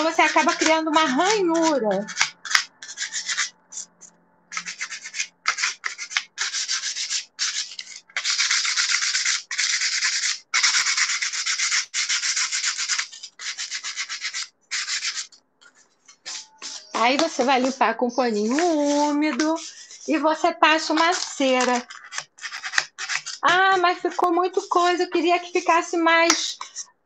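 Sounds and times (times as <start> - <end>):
sandpaper scratching on wood: 0.0 - 15.4, 16.1 - 25.0.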